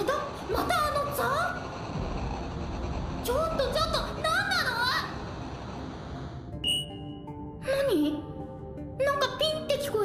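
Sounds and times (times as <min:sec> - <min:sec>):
quiet background music: 0:00.0 - 0:10.0
high electronic beep: 0:06.6 - 0:07.3.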